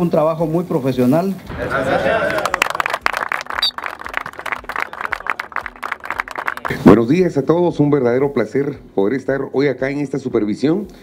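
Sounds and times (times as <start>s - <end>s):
people applauding: 2.1s - 6.9s.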